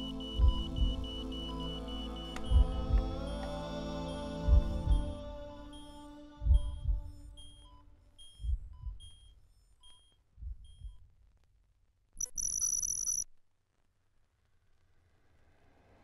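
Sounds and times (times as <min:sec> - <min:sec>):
heartbeat thumps: 0:00.0 - 0:09.4, 0:10.3 - 0:11.1
shrill steady electronic tone: 0:00.0 - 0:10.1, 0:12.2 - 0:13.2
short high electronic beeps: 0:12.2 - 0:13.2.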